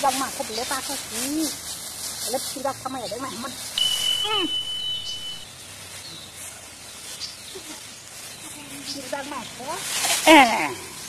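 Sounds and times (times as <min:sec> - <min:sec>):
low hiss: 0:03.6 - 0:06.9
high beep-like tone: 0:03.8 - 0:05.4.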